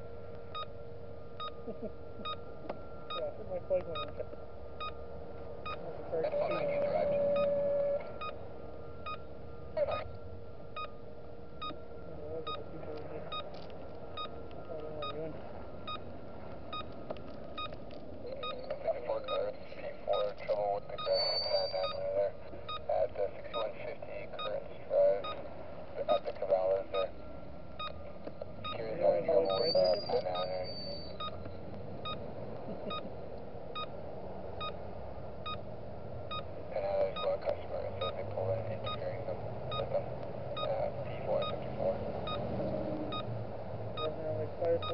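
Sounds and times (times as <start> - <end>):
faint steady tone: 0.0 - 44.9.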